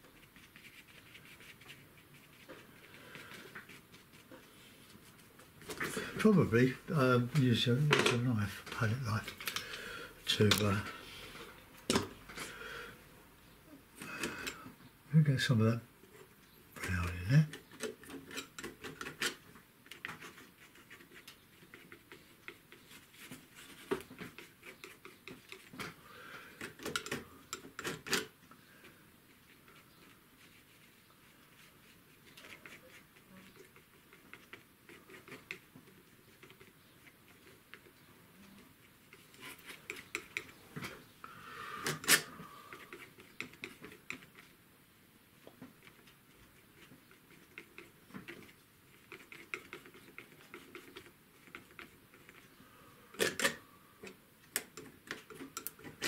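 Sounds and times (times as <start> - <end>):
palette knife tapping and scraping: 16.8 - 26.0, 39.0 - 40.6, 42.0 - 44.5, 46.8 - 52.5.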